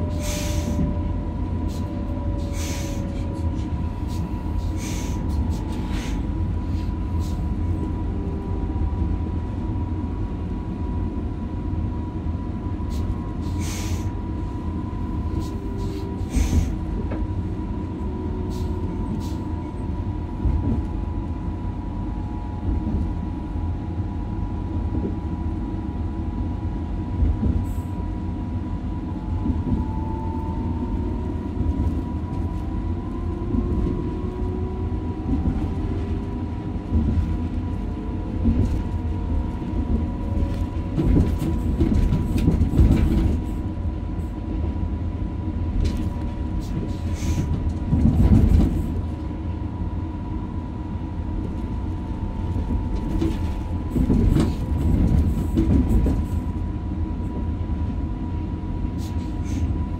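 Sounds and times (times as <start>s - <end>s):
train rumbling: 0.0s - 59.9s.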